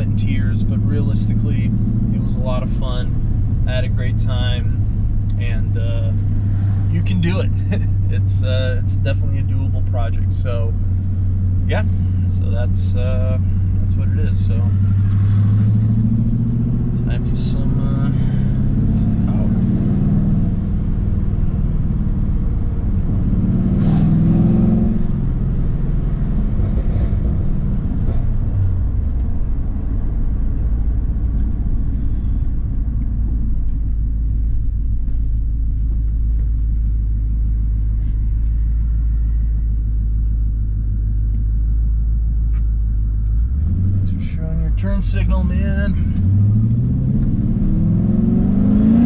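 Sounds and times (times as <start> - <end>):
engine low rumble: 0.0 - 49.0.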